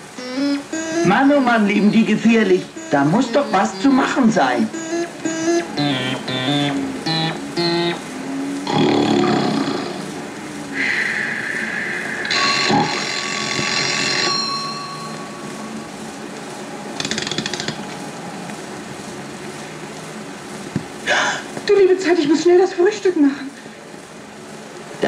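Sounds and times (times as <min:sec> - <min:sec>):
alarm clock bell ringing: 0:00.7 - 0:07.9, 0:12.2 - 0:16.2.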